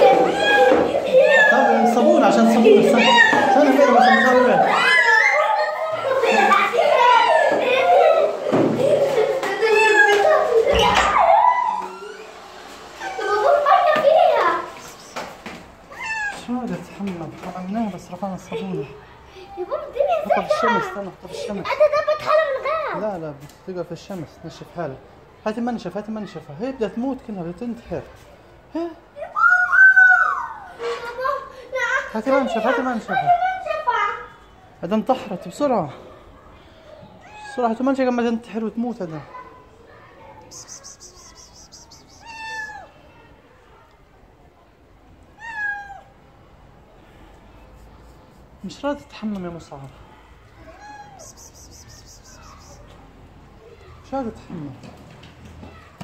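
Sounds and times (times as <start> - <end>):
cat meowing: 15.9 - 16.4, 40.5 - 42.9, 45.4 - 46.1, 50.6 - 52.8.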